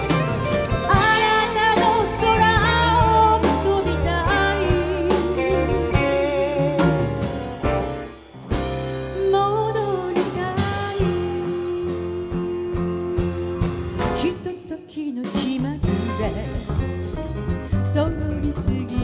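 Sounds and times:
live band playing: 0:00.0 - 0:19.0
woman singing: 0:00.9 - 0:07.2, 0:09.1 - 0:17.0, 0:17.7 - 0:19.0.

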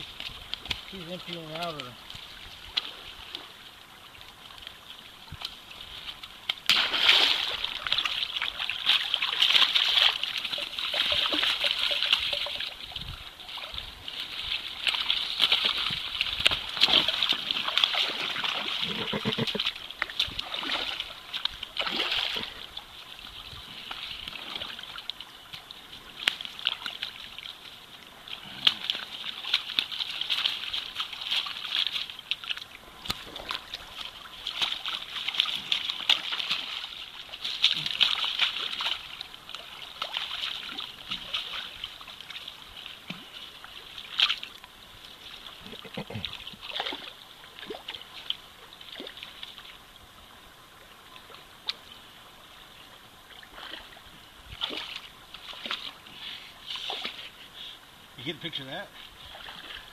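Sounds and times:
fish thrashing and splashing in water: 0:00.0 - 0:44.7, 0:45.3 - 0:49.6, 0:54.6 - 0:57.3.

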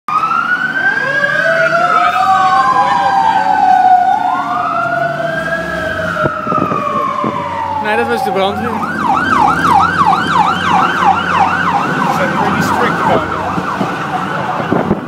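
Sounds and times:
fire engine siren wailing: 0:00.1 - 0:15.0
lower siren tone: 0:00.1 - 0:15.0.

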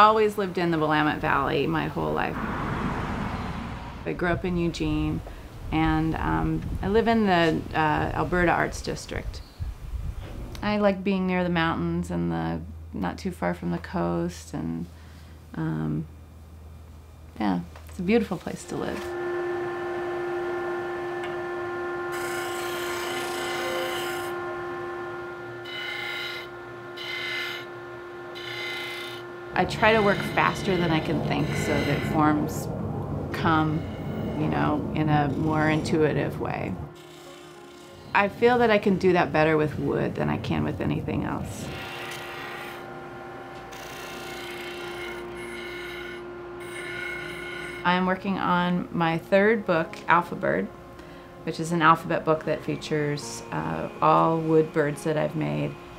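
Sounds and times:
disc sander motor hum: 0:18.7 - 0:32.2, 0:41.6 - 0:47.8
wood rasping on sanding disc: 0:19.6 - 0:32.5, 0:37.0 - 0:38.4, 0:41.6 - 0:47.9.

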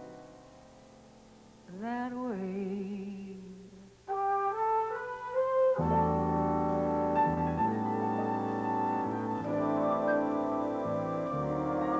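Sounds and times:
orchestra sustained chord: 0:05.8 - 0:11.9.

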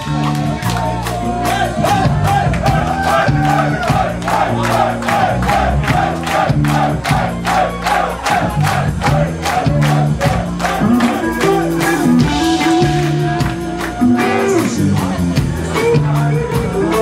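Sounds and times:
crowd voices: 0:00.0 - 0:17.0
rock band playing live: 0:00.0 - 0:17.0.

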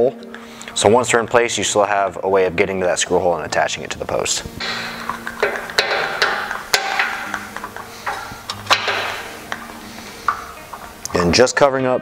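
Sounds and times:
metal parts clicking and knocking: 0:04.6 - 0:10.9.

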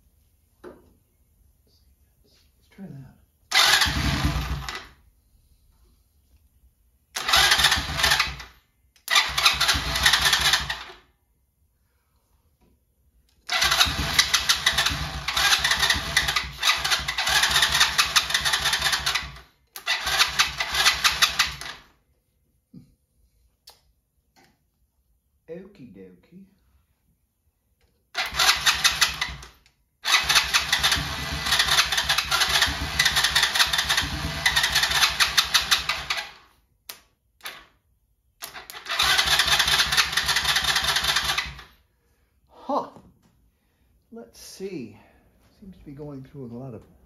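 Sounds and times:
small engine cranking: 0:03.5 - 0:04.9, 0:07.2 - 0:11.0, 0:13.4 - 0:21.9, 0:28.2 - 0:36.5, 0:38.4 - 0:41.8.

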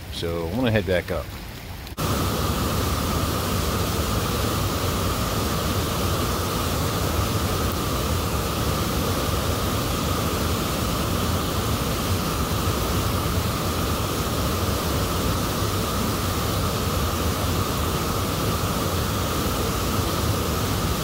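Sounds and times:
water rushing over spillway: 0:00.0 - 0:21.0.

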